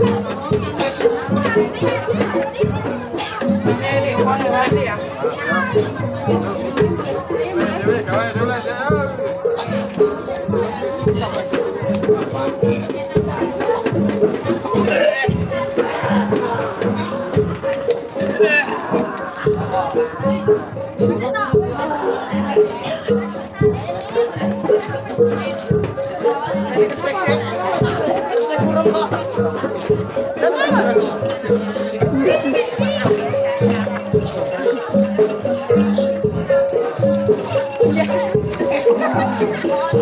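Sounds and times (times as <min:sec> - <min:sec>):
crowd chatter: 0:00.0 - 0:40.0
people talking: 0:00.0 - 0:40.0
traditional music playing: 0:00.0 - 0:40.0.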